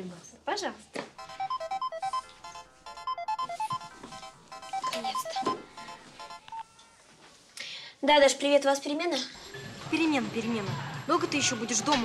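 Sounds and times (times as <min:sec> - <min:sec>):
phone ringtone: 0:01.2 - 0:06.8.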